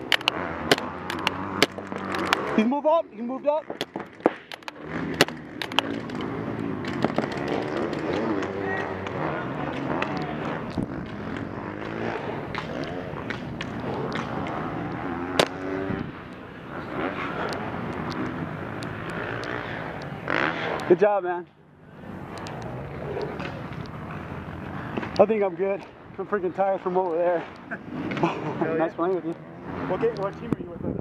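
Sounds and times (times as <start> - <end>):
paintball shots popping: 0.0 - 2.7, 3.6 - 21.0
distant shouting voices: 5.8 - 27.0.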